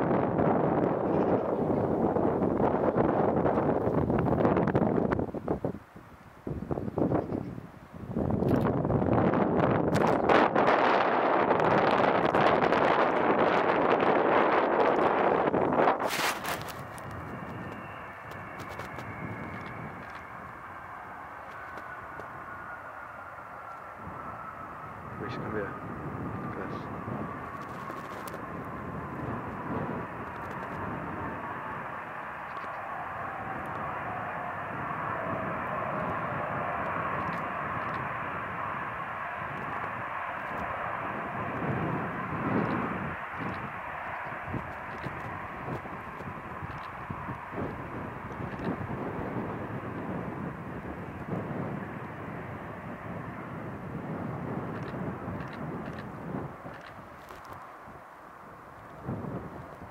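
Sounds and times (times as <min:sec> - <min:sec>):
jet engine whine taxiing: 0:00.0 - 0:59.9
wind buffeting microphone: 0:00.0 - 0:59.9.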